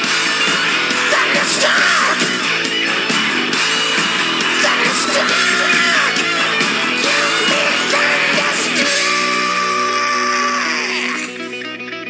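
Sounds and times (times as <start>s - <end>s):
hard rock music: 0.0s - 12.0s
shouted vocals: 0.8s - 2.6s, 4.1s - 11.6s.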